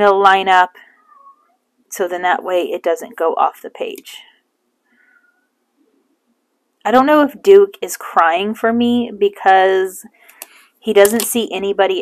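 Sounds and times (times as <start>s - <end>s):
woman speaking: 0.0s - 0.8s, 1.9s - 4.3s, 6.9s - 10.1s, 10.9s - 12.0s.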